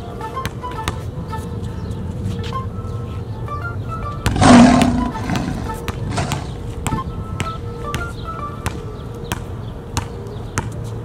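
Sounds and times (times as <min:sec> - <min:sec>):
background music: 0:00.0 - 0:10.6
loud roar: 0:04.3 - 0:06.6.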